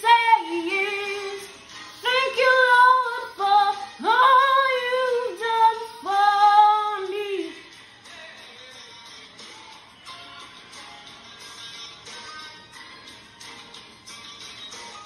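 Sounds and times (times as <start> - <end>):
girl singing: 0.0 - 7.6.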